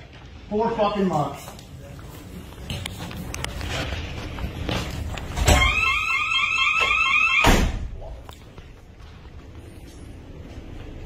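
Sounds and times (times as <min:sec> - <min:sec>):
warbling door alarm: 0:05.4 - 0:07.6.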